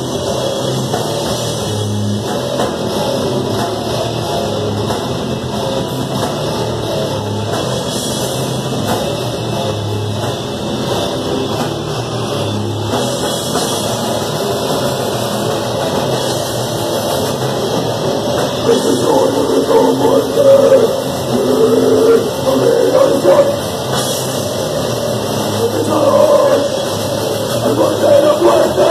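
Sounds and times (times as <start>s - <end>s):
bass guitar: 0.0s - 28.9s
distorted electric guitar: 0.0s - 28.9s
drum kit: 0.0s - 28.9s.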